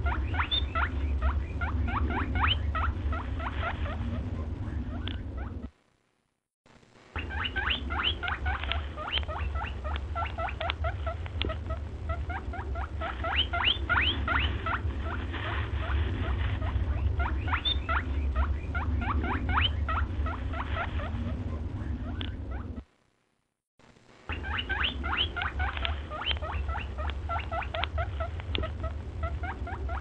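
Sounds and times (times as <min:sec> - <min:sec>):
small animal squeaky chirping: 0:00.0 - 0:05.7, 0:07.2 - 0:15.2, 0:16.6 - 0:22.8, 0:24.3 - 0:30.0
low steady hum: 0:00.0 - 0:30.0.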